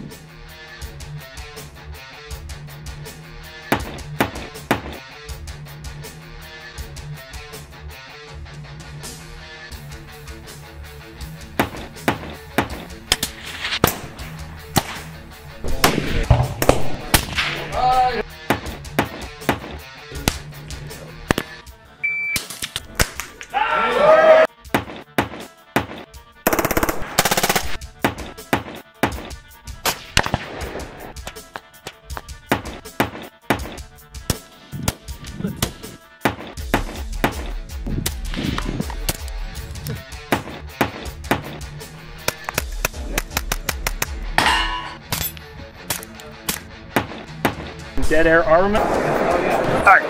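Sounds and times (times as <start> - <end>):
guitar music: 8.0 - 21.6
rifle shots: 11.6 - 17.7, 26.5 - 28.8, 29.8 - 31.0.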